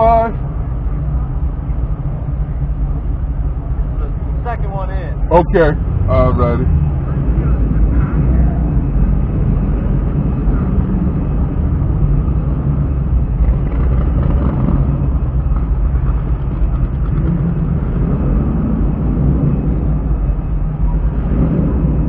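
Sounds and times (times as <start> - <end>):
car engine running: 0.0 - 22.0.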